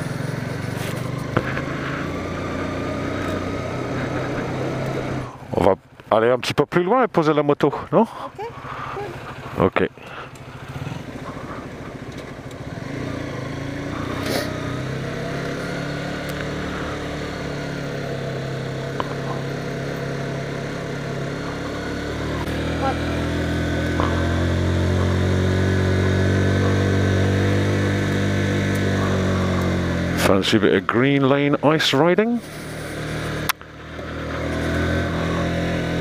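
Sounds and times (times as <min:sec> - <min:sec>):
motorcycle engine running: 0:00.0 - 0:36.0.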